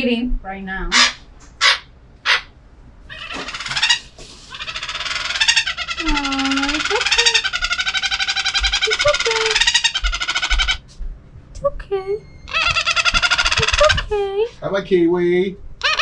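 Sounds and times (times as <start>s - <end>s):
toucan pulsing croaking call: 0.9s - 10.9s, 12.2s - 14.2s, 15.8s - 16.0s.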